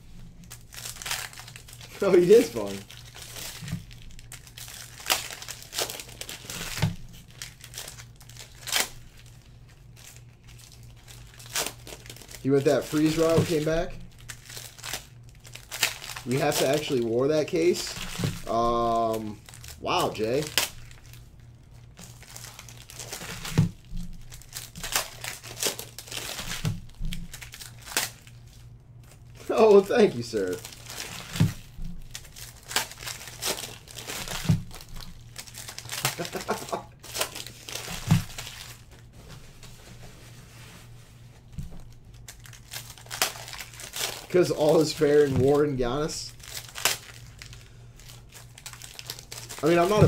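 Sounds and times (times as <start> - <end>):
steady low hum: 0.0 - 50.0
foil wrappers crinkling and tearing: 0.1 - 39.7, 41.4 - 50.0.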